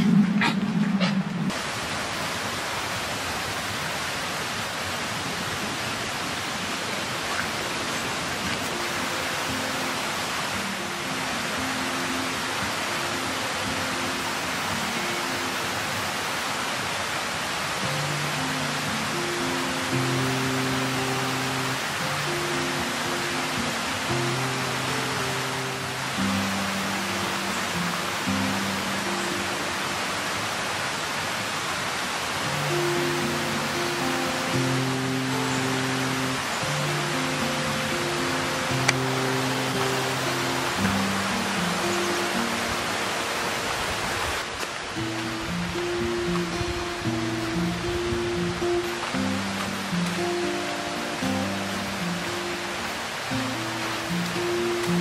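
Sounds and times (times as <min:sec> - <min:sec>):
mountain stream rushing: 0:00.0 - 0:55.0
soft music of low held notes: 0:17.7 - 0:30.6, 0:32.4 - 0:55.0.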